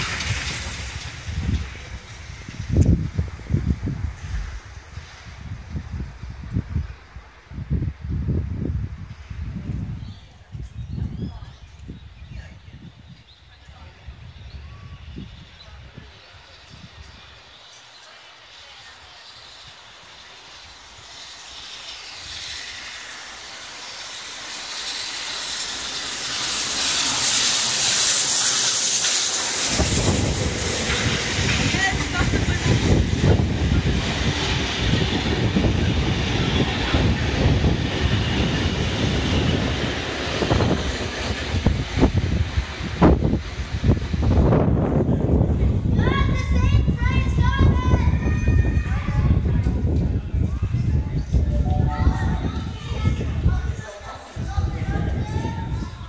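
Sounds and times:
locomotive high hiss: 0.0s - 6.4s, 13.9s - 44.9s
train rumbling past: 0.0s - 56.0s
wheels clicking over rails: 20.8s - 42.2s.

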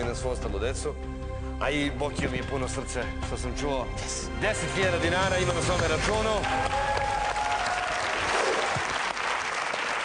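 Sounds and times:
studio audience applauding: 5.6s - 10.0s.

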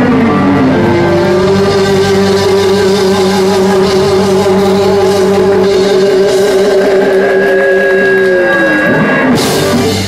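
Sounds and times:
blues-rock band playing: 0.0s - 10.0s
electric guitar sliding note: 0.0s - 10.0s.

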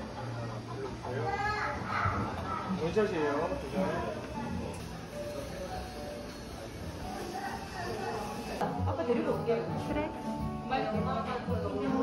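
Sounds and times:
faint room chatter: 0.0s - 12.0s.

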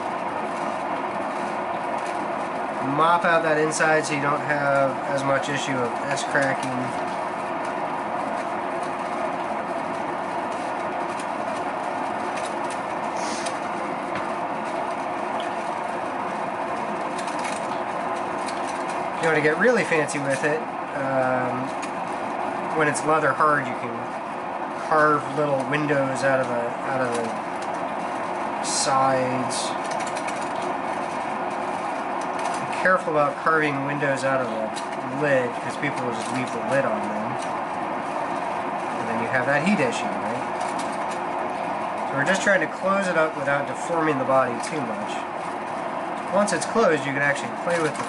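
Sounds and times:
potter's wheel motor humming: 0.0s - 48.0s
wet clay hissing on wheel: 12.9s - 16.9s.

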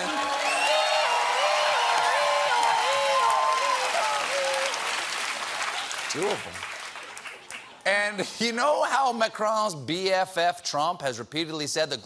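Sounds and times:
person whooping: 0.0s - 4.8s
studio audience applauding: 0.0s - 7.8s.

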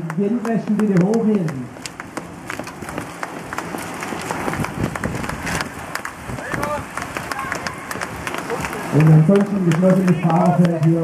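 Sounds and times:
bicycles riding past: 0.0s - 11.0s.

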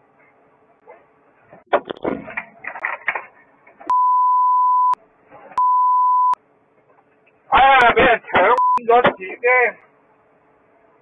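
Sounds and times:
censor bleep tone: 3.9s - 5.0s, 5.6s - 6.4s, 8.6s - 8.8s.

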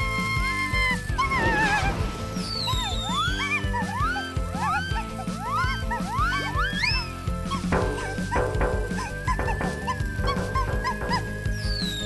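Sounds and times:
cartoon background music: 0.0s - 12.0s.

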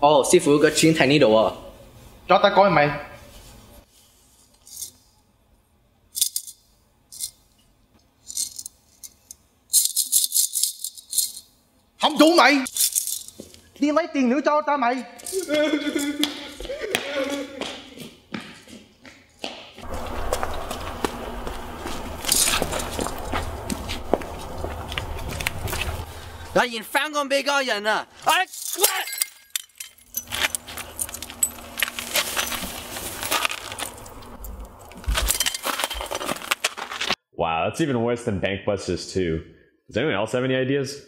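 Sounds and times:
coins rattling in ceramic piggy bank: 6.2s - 7.4s, 8.3s - 11.5s, 12.7s - 13.4s
footsteps on pavement: 16.2s - 26.2s
low steady rumble: 19.8s - 26.6s.

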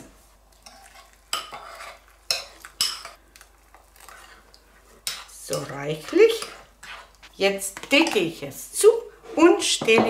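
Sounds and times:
metal spoon stirring: 0.5s - 8.4s.

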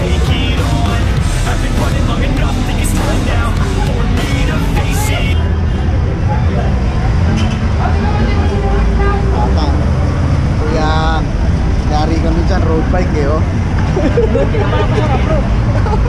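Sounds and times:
low road traffic rumble: 0.0s - 16.0s
people talking nearby: 3.3s - 16.0s.

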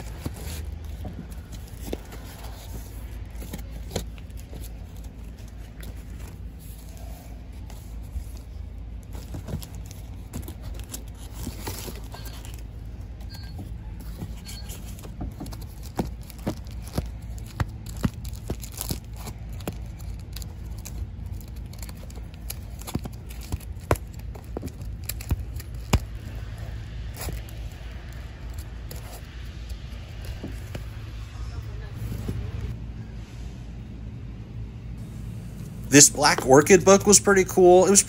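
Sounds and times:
plastic sleeves crinkling: 0.0s - 31.0s
steady low hum: 0.0s - 38.0s
comic books slapping together: 14.0s - 26.4s.

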